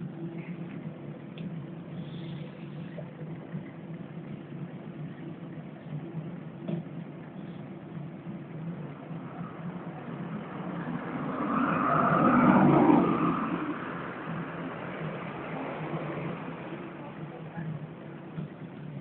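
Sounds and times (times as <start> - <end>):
car passing: 8.8 - 17.0.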